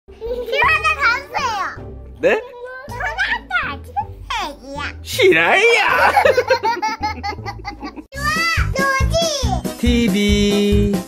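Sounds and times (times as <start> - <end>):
music playing: 0.1 - 11.0
girl speaking excitedly: 0.5 - 1.8, 8.1 - 9.6.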